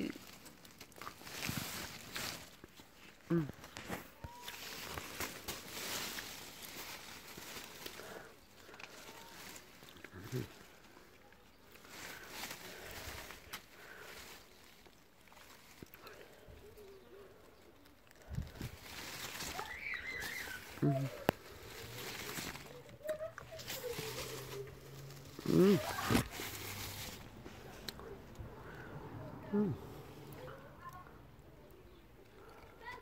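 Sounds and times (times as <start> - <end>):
leaves rustling and crackling: 0.0 - 31.0
person murmuring: 3.3 - 3.8, 9.2 - 10.8, 20.7 - 21.8, 22.7 - 26.5, 29.3 - 30.0.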